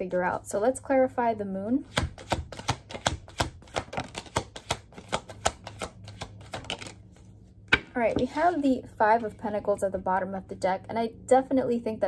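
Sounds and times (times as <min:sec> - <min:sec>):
cards being shuffled: 0:02.0 - 0:07.3.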